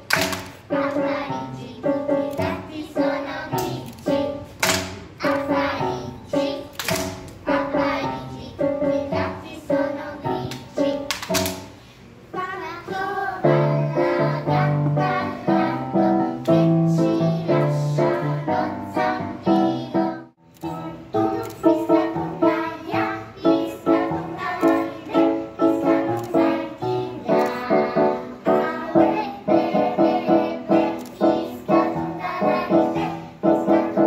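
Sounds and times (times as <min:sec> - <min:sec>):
clap: 0:00.0 - 0:00.6, 0:04.6 - 0:05.4, 0:06.7 - 0:07.4, 0:10.5 - 0:11.7
piano accompaniment: 0:00.0 - 0:34.0
children singing in chorus: 0:12.4 - 0:20.2, 0:20.8 - 0:34.0.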